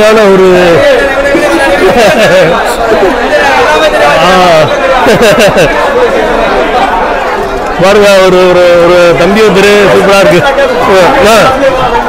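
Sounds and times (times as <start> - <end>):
men talking at once: 0.0 - 12.0.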